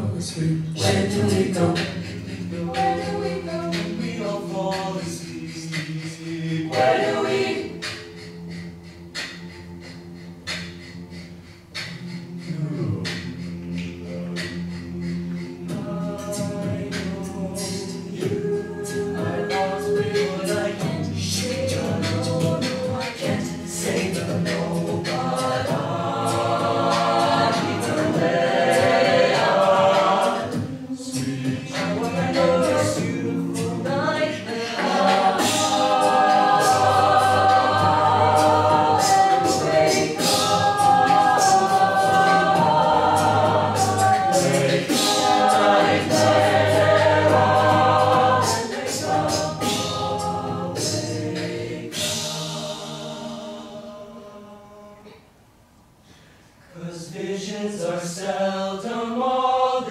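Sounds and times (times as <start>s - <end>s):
a cappella group singing: 0.0s - 55.4s, 56.1s - 59.9s
vocal percussion beats: 0.0s - 55.4s.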